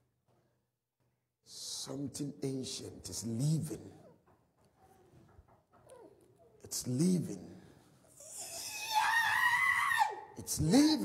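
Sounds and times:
person screaming: 8.2 - 10.4.

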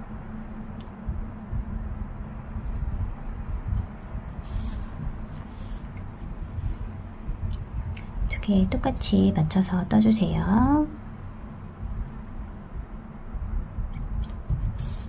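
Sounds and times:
steady low rumble: 0.0 - 15.0
yarn rubbing and rustling: 2.6 - 7.9.

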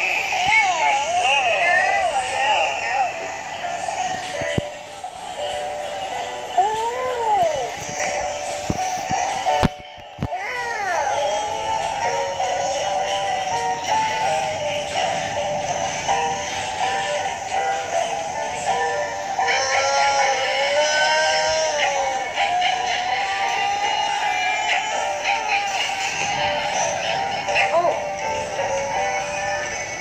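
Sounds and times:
cartoon music from tablet speaker: 0.0 - 30.0
high-pitched synthetic voices singing: 0.0 - 30.0.

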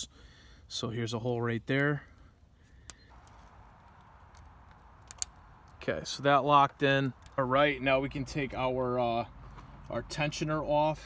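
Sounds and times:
light metallic clicks: 2.8 - 5.8.

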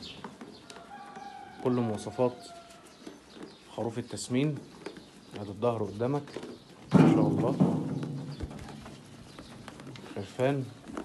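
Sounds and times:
sheep eating grain: 0.0 - 11.0
low knock: 6.9 - 8.8.

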